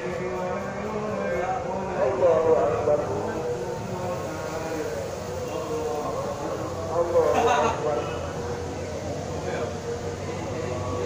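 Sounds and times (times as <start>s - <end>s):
chanted prayer over loudspeaker: 0.0s - 11.0s.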